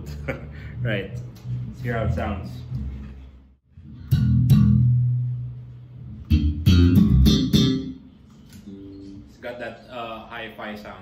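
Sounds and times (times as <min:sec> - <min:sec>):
bass guitar notes plucked: 0:03.7 - 0:09.3.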